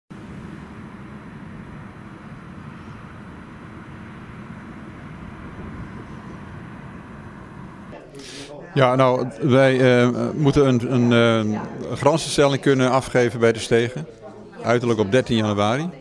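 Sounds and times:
distant road traffic rumble: 0:00.1 - 0:08.0.

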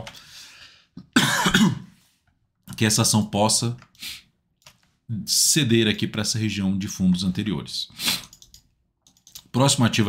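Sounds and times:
man coughing: 0:01.0 - 0:02.0.

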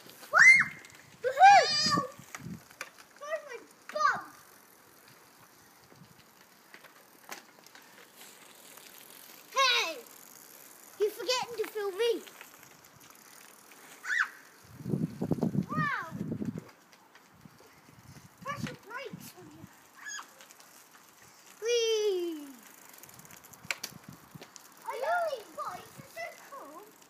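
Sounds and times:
young children shouting: 0:00.3 - 0:02.2, 0:14.0 - 0:14.5.

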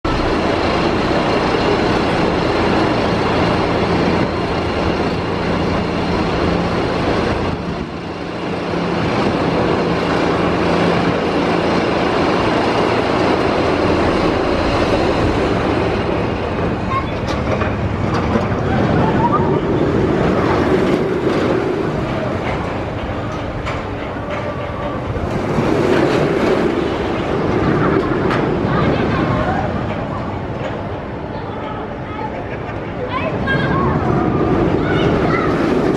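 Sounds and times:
roller coaster train clattering: 0:00.1 - 0:35.9.

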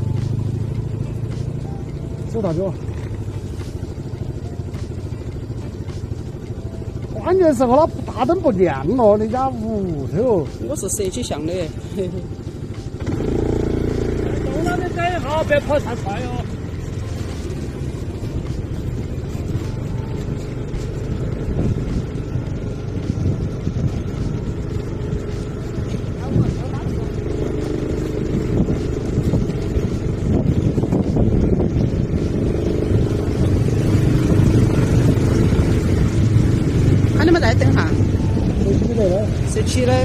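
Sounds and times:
motorcycle engine running: 0:00.0 - 0:40.0.

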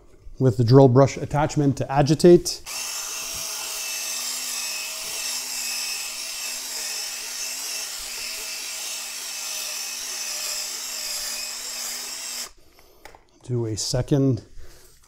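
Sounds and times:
drill motor hum: 0:02.7 - 0:12.6.

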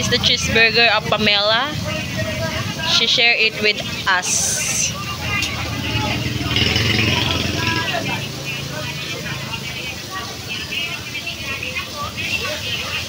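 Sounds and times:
background voices: 0:00.0 - 0:13.0
vehicle engine humming: 0:00.0 - 0:13.0.

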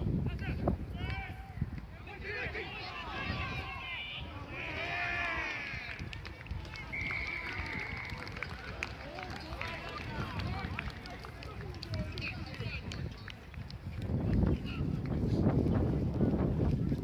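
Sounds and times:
crowd shouting: 0:02.0 - 0:06.0.

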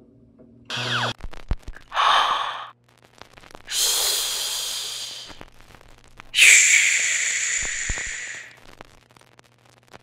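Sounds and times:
person exhaling: 0:01.8 - 0:02.7, 0:03.7 - 0:05.4, 0:06.4 - 0:08.6
high hissing breath: 0:01.9 - 0:02.7, 0:03.7 - 0:05.4, 0:06.4 - 0:08.6.

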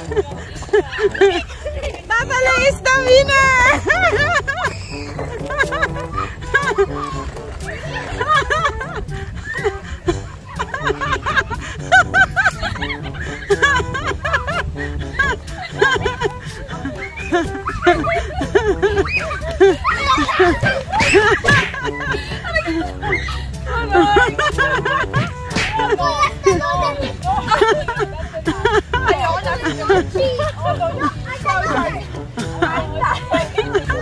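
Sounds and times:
background music: 0:00.0 - 0:34.0
children laughing and squealing: 0:00.0 - 0:34.0.

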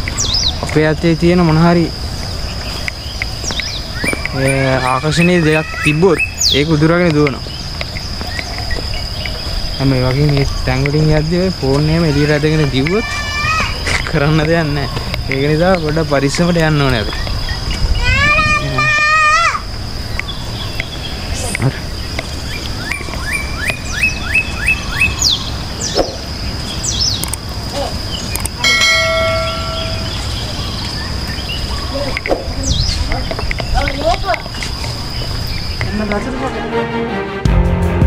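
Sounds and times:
insects whining: 0:00.0 - 0:37.0
low outdoor background noise: 0:00.0 - 0:37.1
bird whistling calls: 0:02.5 - 0:11.3, 0:20.1 - 0:27.2, 0:27.8 - 0:35.8.

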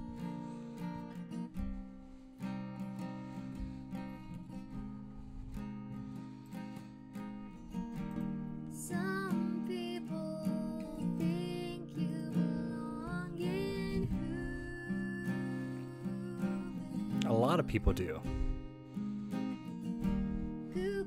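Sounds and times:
strummed acoustic guitar: 0:00.0 - 0:21.0
woman singing: 0:08.7 - 0:17.3, 0:20.6 - 0:21.0.

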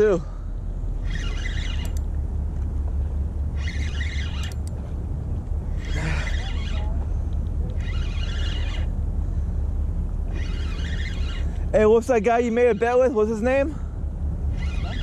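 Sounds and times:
low rumble: 0:00.0 - 0:15.0
fishing reel whirring: 0:00.9 - 0:02.2, 0:03.5 - 0:04.7, 0:05.7 - 0:07.0, 0:07.6 - 0:09.0, 0:10.2 - 0:13.8, 0:14.5 - 0:15.0.

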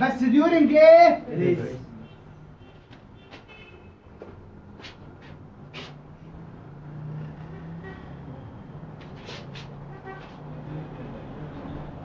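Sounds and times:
marker squeaking on whiteboard: 0:04.8 - 0:06.1, 0:09.0 - 0:10.5.

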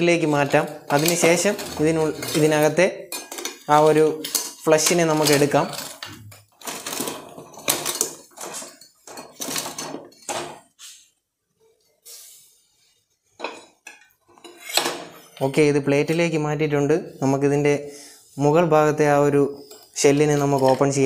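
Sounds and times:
person speaking: 0:00.0 - 0:06.4, 0:15.4 - 0:21.0
metal utensils clinking on pot: 0:00.2 - 0:10.7, 0:13.4 - 0:16.2, 0:19.5 - 0:21.0.

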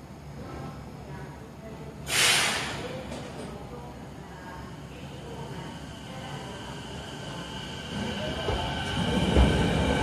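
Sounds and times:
air brakes hissing: 0:02.1 - 0:02.8.

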